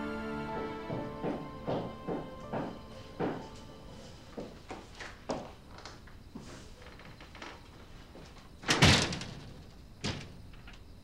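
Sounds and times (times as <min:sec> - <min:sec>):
wooden doors closing with a knock: 0:00.8 - 0:03.6, 0:08.6 - 0:10.9.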